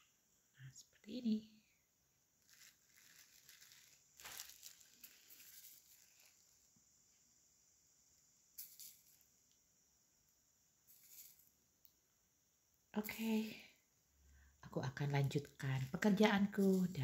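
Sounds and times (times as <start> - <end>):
faint handling rustles: 2.4 - 6.5.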